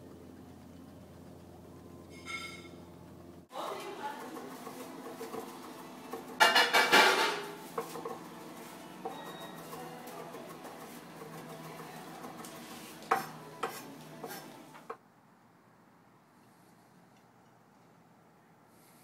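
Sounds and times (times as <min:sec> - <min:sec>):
steady low hum: 0:00.0 - 0:03.6.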